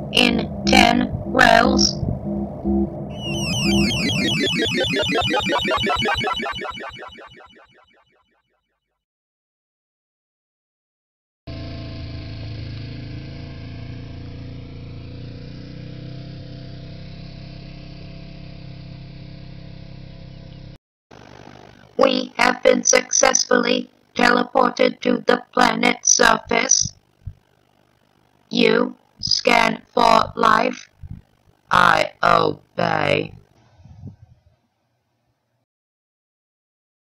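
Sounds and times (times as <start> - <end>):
pulsing warbling electronic sound: 0.2 - 8.6.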